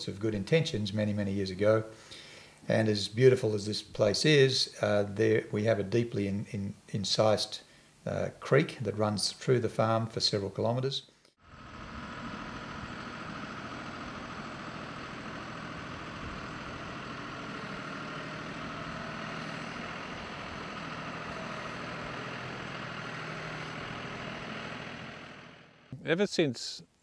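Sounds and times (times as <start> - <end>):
tractor engine running: 11.4 - 26.0.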